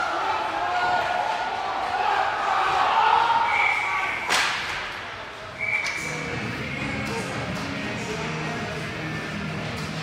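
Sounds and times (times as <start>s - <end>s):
referee's whistle: 3.4s - 4.3s, 5.6s - 6.2s
murmur of voices: 5.0s - 10.0s.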